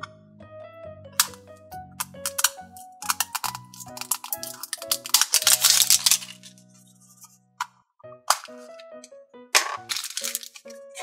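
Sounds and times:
background music: 0:00.0 - 0:11.0
plastic capsule clicks and crackles: 0:01.2 - 0:01.4, 0:02.0 - 0:11.0.

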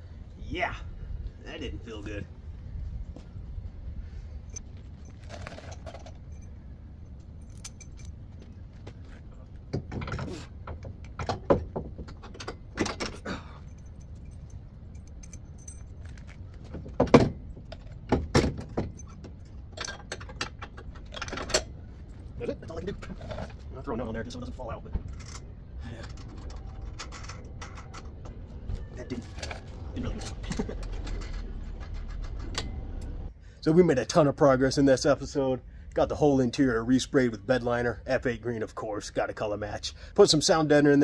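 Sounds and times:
metal clanks and knocks: 0:09.7 - 0:23.6.

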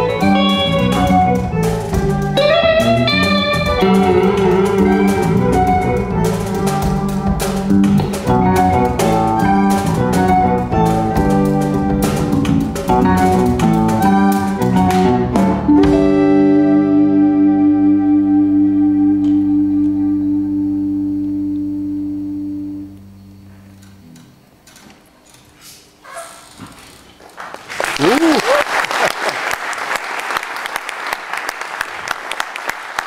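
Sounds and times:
live band playing: 0:00.0 - 0:23.2
applause: 0:27.3 - 0:33.0.

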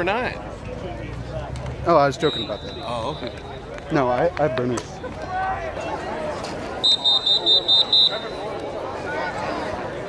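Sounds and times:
background chatter: 0:00.0 - 0:10.0.

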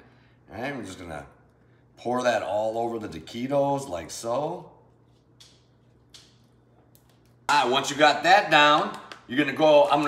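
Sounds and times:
faint low room hum: 0:00.0 - 0:10.0.

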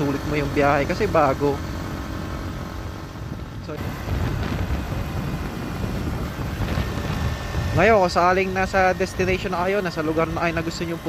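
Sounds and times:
motorcycle engine running: 0:00.0 - 0:11.0
wind noise: 0:02.0 - 0:11.0.

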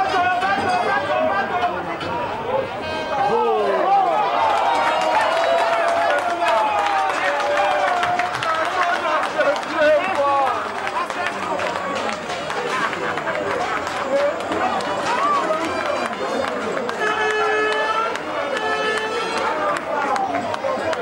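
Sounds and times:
people shouting and cheering: 0:00.0 - 0:21.0.

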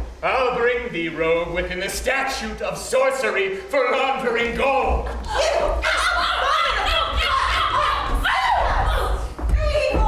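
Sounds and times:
people laughing and crying out: 0:05.1 - 0:10.0.

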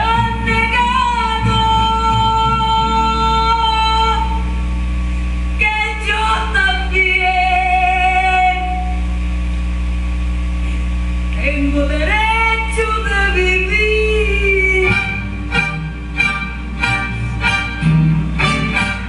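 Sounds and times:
instrumental backing music: 0:13.2 - 0:19.0.

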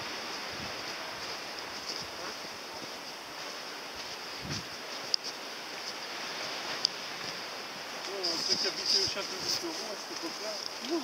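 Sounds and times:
wind hiss: 0:00.0 - 0:11.0
people talking: 0:08.1 - 0:11.0.

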